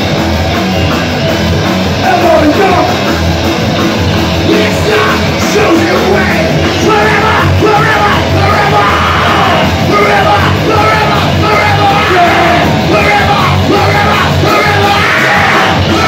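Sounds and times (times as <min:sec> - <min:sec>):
loud rock band playing: 0:00.0 - 0:16.0
vocalist yelling into microphone: 0:04.7 - 0:16.0.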